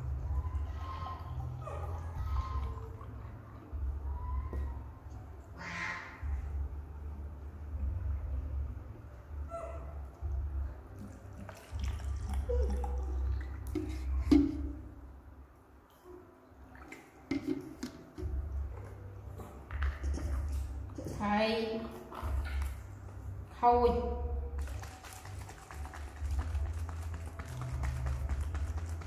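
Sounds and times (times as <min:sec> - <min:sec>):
low rumble: 0:06.2 - 0:15.1.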